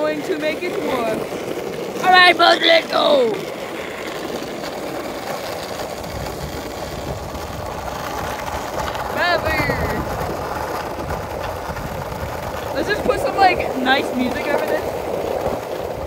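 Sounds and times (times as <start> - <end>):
skateboard wheels rolling on asphalt: 0.0 - 16.0.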